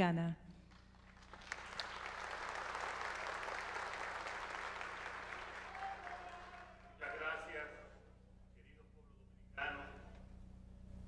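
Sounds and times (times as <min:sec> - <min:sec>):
audience applauding: 0:00.7 - 0:07.6.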